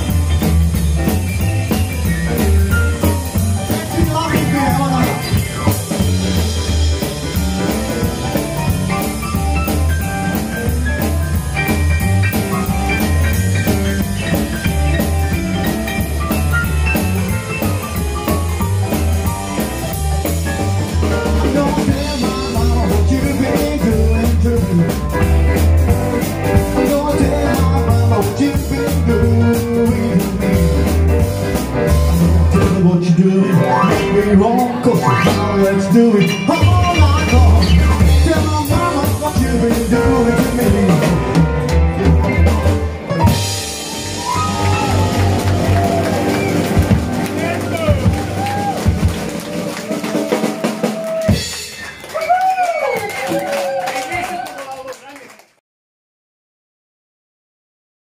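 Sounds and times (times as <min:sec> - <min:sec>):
upright bass line: 0:00.0 - 0:50.2
electric guitar: 0:00.0 - 0:52.1
keyboard piano: 0:00.0 - 0:52.2
drum kit beat: 0:00.0 - 0:53.5.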